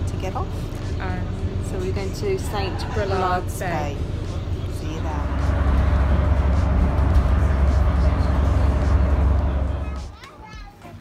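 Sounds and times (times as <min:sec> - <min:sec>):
bus rumbling inside cabin: 0:00.0 - 0:10.6
children's voices: 0:09.7 - 0:11.0.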